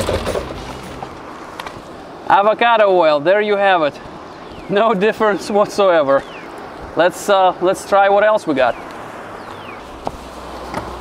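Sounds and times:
diesel engine humming: 0.0 - 1.5.

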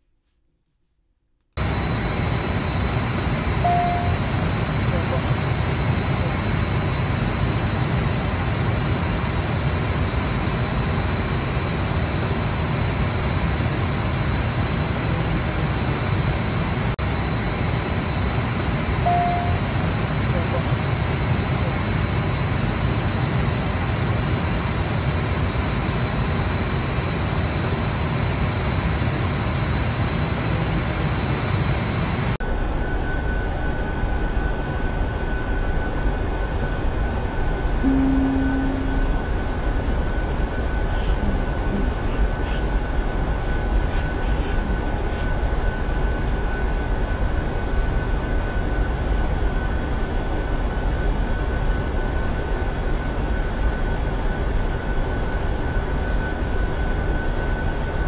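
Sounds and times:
thin steady high tone: 1.6 - 6.7, 17.1 - 22.1, 37.8 - 39.2
jet engine and airflow noise: 1.6 - 58.0.

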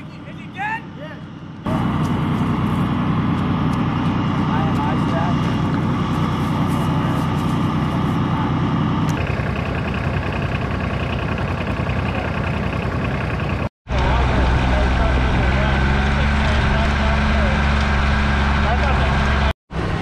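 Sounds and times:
diesel engine droning: 0.0 - 20.0.

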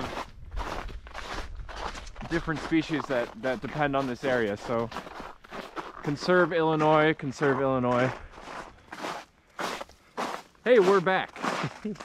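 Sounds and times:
footsteps crunching on snow: 0.0 - 12.0.

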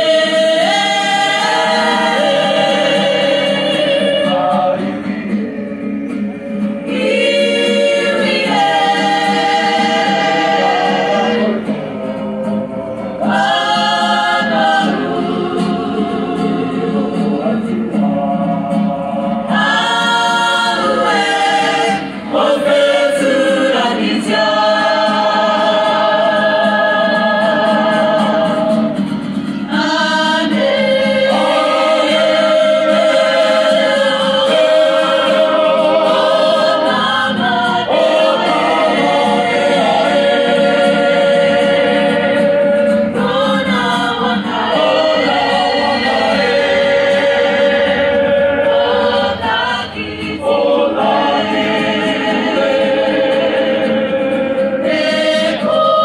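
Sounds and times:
group singing in chorus: 0.0 - 56.0.

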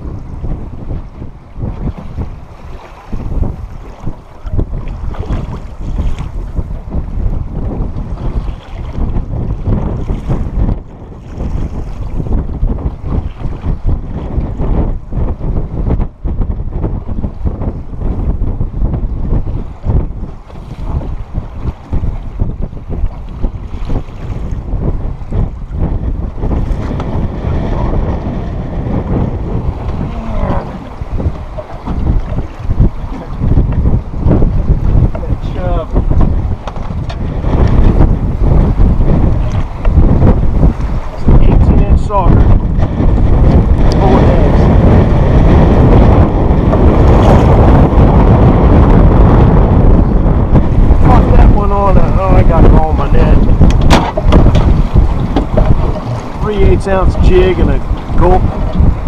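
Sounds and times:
gusty wind buffeting microphone: 0.0 - 59.0.

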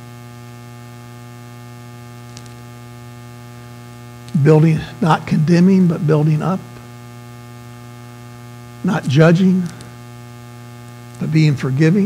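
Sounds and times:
electrical mains hum: 0.0 - 12.0
faint buzz: 0.0 - 12.0.

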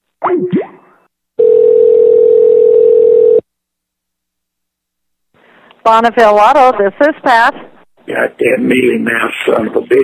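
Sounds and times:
telephone line tone: 1.4 - 3.4.

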